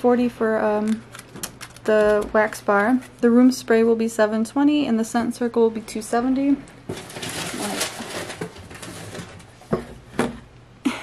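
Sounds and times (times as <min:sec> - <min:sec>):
rustling while rummaging: 0:06.9 - 0:10.0.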